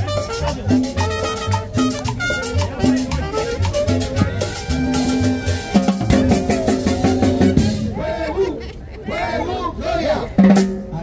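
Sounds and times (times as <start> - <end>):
salsa band playing: 0.0 - 8.4.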